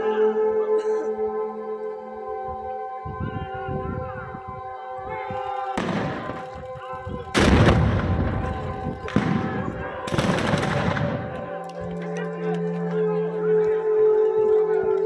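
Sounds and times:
gunshots with rolling rumble: 5.8 - 6.6, 7.3 - 11.5.

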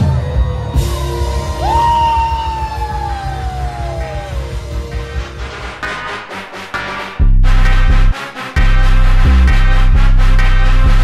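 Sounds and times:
bass and drums: 0.0 - 11.0.

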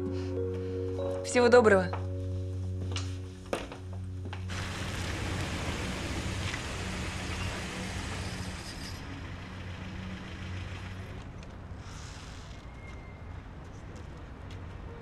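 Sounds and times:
low background music tone: 0.0 - 7.8
street noise: 0.0 - 15.0
car driving up and stopping: 3.7 - 13.2.

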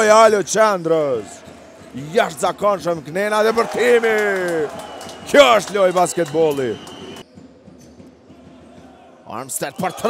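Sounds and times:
man commentating excitedly: 2.0 - 6.8, 9.3 - 10.0.

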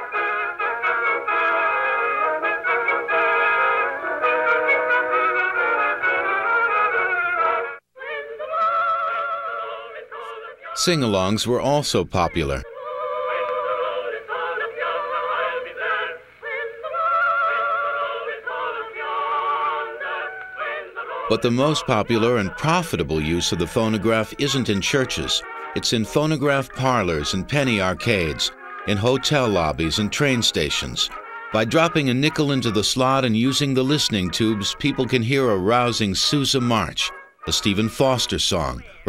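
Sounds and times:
old phonograph brass band music: 0.0 - 7.9, 8.6 - 39.0
person singing with vibrato: 7.2 - 35.1.

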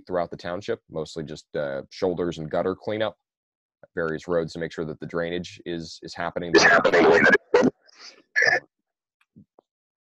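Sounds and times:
man clearing throat: 6.6 - 7.7.

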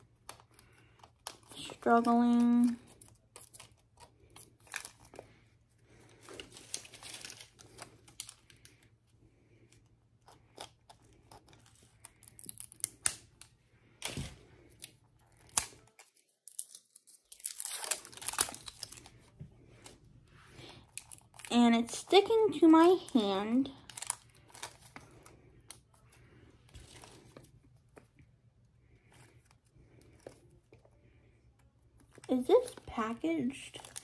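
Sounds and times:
plastic wrapping crinkling and tearing: 0.0 - 9.0, 9.8 - 20.0, 20.6 - 26.0, 32.0 - 34.0.

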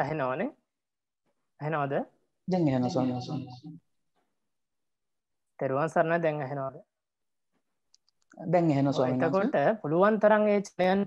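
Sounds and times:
person speaking: 2.5 - 3.8, 8.3 - 9.7.

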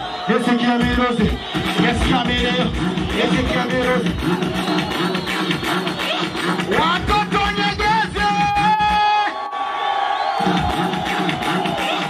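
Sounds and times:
live music with singer: 0.0 - 9.4, 10.4 - 12.0
crowd cheering: 0.0 - 12.0.

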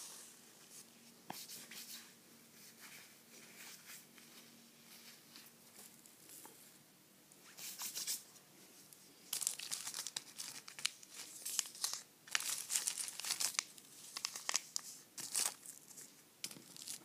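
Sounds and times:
paper sachets crinkling: 9.3 - 17.0.

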